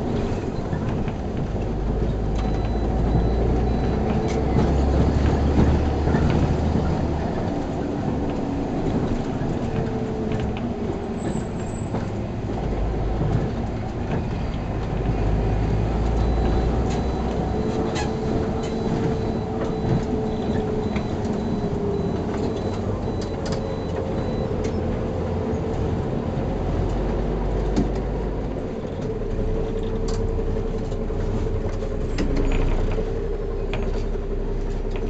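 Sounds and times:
bus engine drone: 0.0 - 35.0
road rumble: 0.0 - 35.0.

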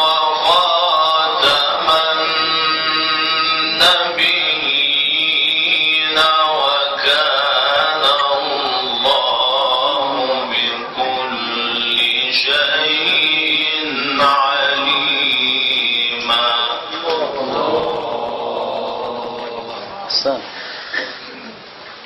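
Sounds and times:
man chanting a recitation: 0.0 - 20.5.

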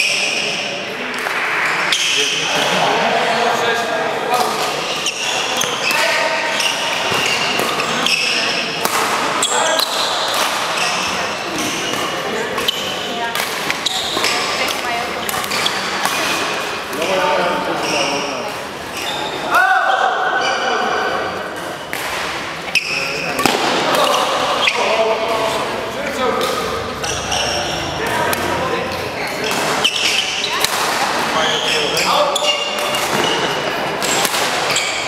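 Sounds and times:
shoes squeaking on floor: 4.7 - 19.6, 22.6 - 25.7, 26.5 - 35.0
racket striking shuttlecock: 23.4 - 24.2, 29.5 - 31.3, 32.7 - 34.8.

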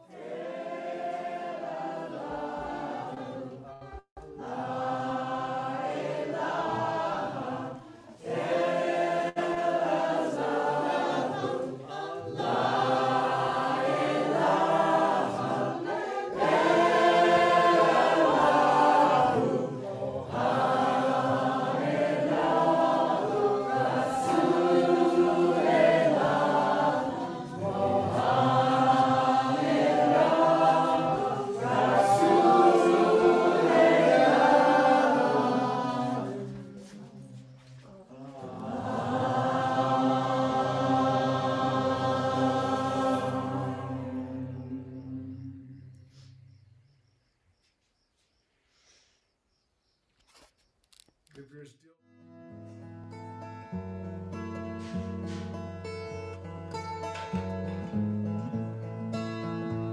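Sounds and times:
group of voices chanting: 4.3 - 36.8, 38.1 - 45.2.

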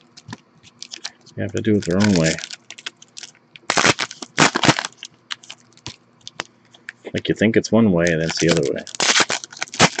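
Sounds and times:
foil wrapper tearing and crinkling: 0.1 - 6.5, 8.0 - 10.0.

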